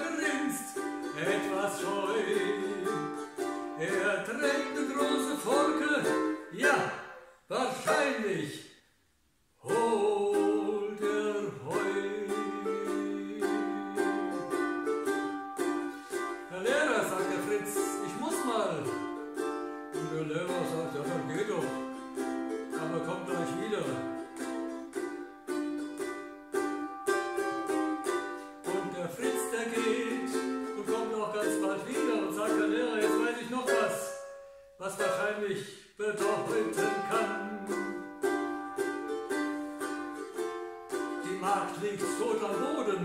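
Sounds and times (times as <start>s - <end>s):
ukulele strumming: 0.0s - 43.0s
man's wordless voice: 3.8s - 8.8s, 16.5s - 19.0s, 20.0s - 21.8s, 22.8s - 24.2s.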